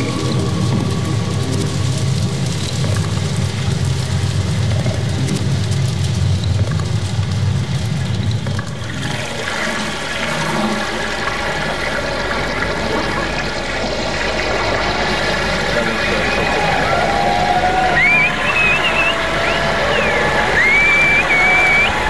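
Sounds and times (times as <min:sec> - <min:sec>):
sustained tones: 0:00.0 - 0:03.0, 0:15.2 - 0:22.0
rushing water with rumble: 0:00.0 - 0:22.0.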